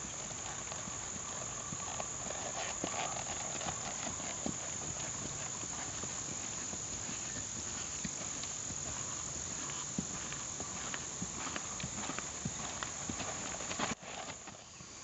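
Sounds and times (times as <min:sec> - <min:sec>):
horse hoofbeats on grass and dirt: 0:00.0 - 0:15.0
insects droning: 0:00.0 - 0:15.0.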